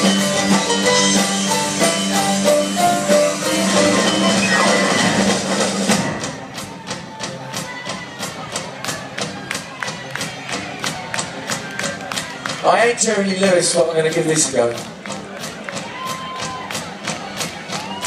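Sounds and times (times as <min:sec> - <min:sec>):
live band playing: 0:00.0 - 0:18.0.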